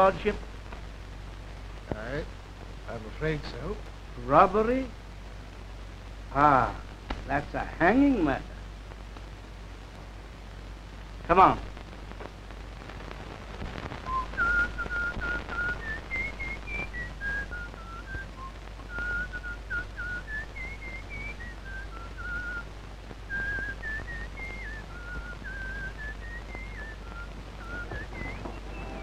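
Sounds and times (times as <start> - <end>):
old soundtrack hiss: 0.0 - 29.0
person whistling a tune: 14.1 - 22.6, 23.4 - 29.0.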